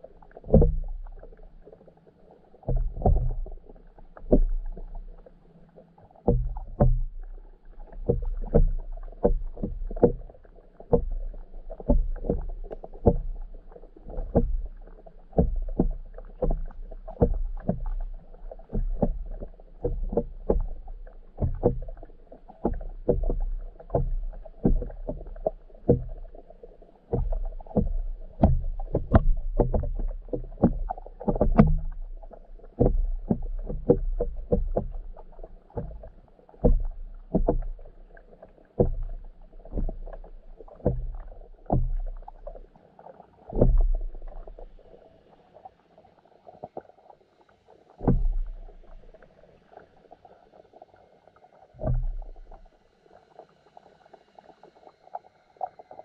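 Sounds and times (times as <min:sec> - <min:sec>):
muffled underwater knocks and thumps: 0:00.0 - 0:45.3, 0:47.9 - 0:50.3, 0:51.8 - 0:52.8.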